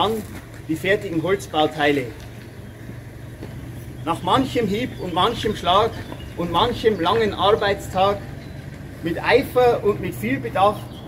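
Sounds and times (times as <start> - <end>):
engine humming steadily: 0.0 - 11.0.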